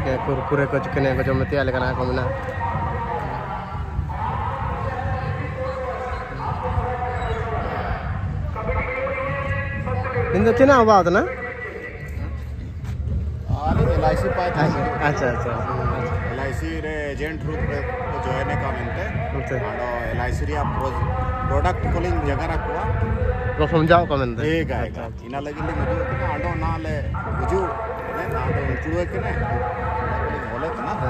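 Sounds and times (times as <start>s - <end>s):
man speaking: 0.0s - 12.2s, 13.5s - 31.0s
voices talking: 0.0s - 31.0s.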